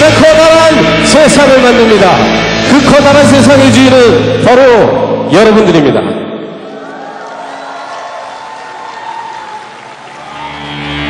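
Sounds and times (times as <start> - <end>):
amplified band music: 0.0 - 7.2
crowd applauding and cheering: 6.6 - 11.0.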